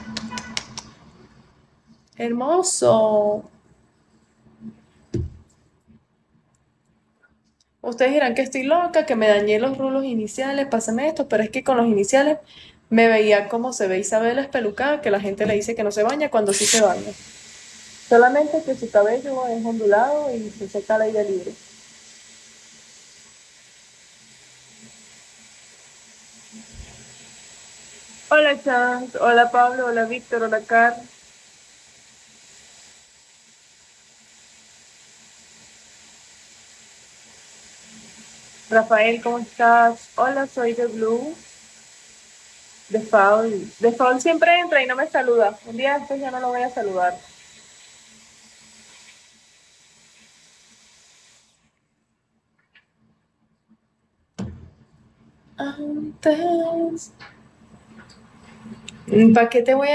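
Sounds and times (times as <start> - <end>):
hot-air styling wand hiss: 14.6 - 51.7.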